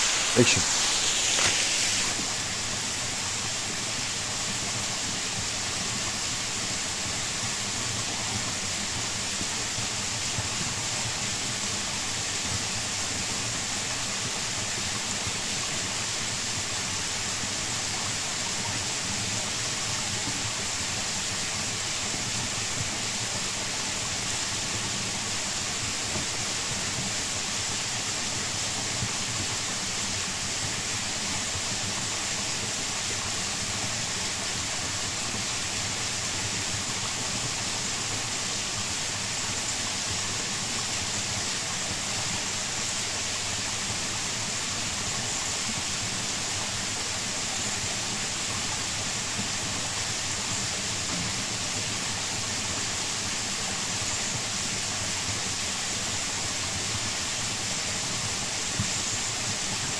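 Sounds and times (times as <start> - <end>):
waterfall rushing: 0.0 - 3.4.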